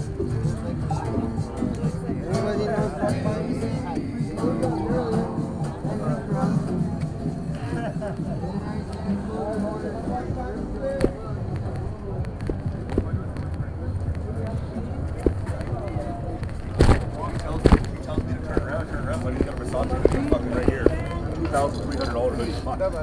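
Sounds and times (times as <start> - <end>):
murmur of people talking: 0.0 - 23.0
low rumble of traffic: 5.9 - 23.0.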